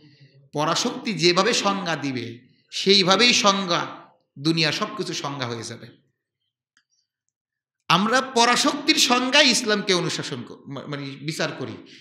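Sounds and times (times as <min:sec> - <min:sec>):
man speaking: 0:00.6 - 0:06.0, 0:07.9 - 0:12.0.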